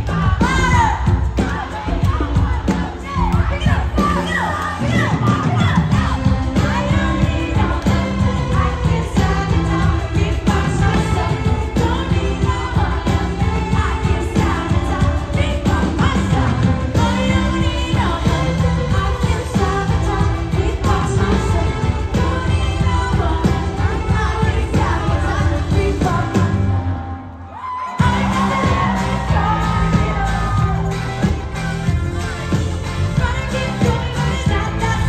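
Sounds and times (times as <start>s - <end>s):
woman singing: 0.0s - 31.4s, 33.0s - 35.0s
live rock band: 0.0s - 35.0s.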